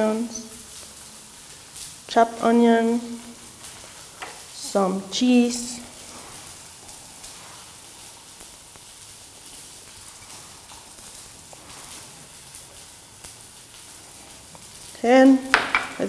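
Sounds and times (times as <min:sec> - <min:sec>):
steady faint hiss: 0:00.0 - 0:16.0
light ticks of sprinkled cheese: 0:05.6 - 0:15.0.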